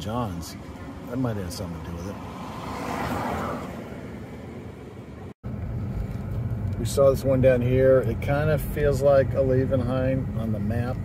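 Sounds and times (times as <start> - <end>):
road rumble inside moving car: 0.6 - 11.0
car passing close by: 1.8 - 6.2.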